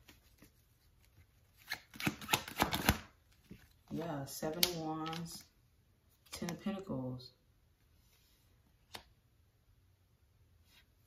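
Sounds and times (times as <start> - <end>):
cards being shuffled: 0.0 - 4.0.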